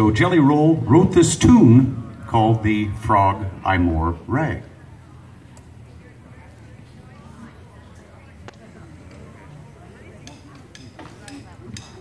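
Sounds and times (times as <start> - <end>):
faint background murmur: 0.0 - 12.0.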